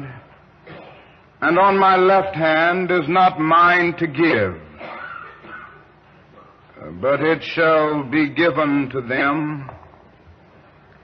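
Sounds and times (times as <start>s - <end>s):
recording hiss and room noise: 0.0s - 11.0s.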